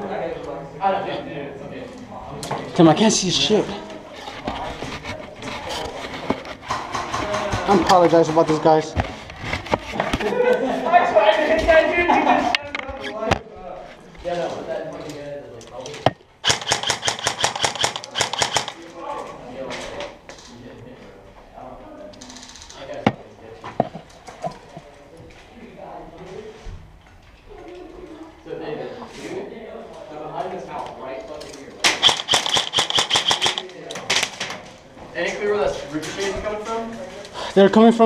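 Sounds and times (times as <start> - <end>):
paintball marker rapid firing: 16.4 - 18.8, 31.8 - 33.7
sharp crack: 16.4 - 18.8, 31.8 - 34.4.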